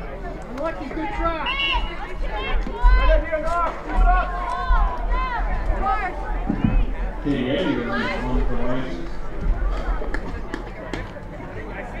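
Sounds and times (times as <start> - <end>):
voices calling out: 0.0 - 12.0.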